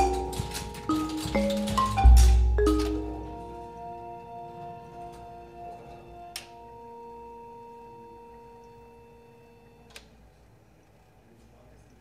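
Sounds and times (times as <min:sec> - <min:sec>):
mallet instrument chord ringing: 0:00.0 - 0:04.2.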